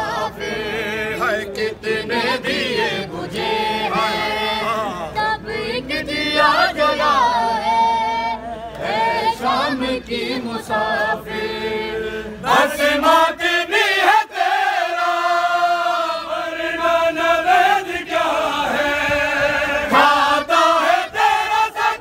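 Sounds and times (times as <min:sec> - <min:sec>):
men chanting a lament: 0:00.0 - 0:22.0.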